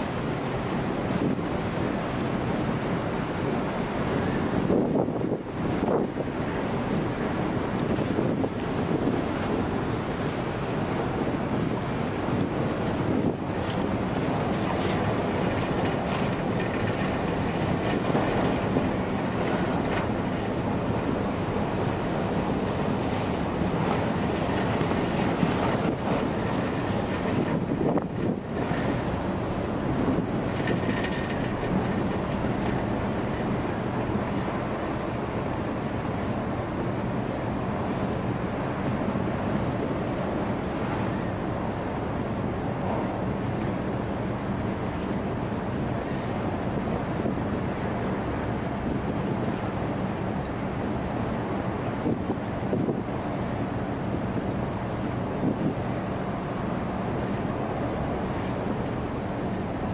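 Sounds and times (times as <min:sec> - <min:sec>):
low rumble of ships in ice: 0:00.0 - 0:59.9
wind buffeting microphone: 0:00.0 - 0:59.9.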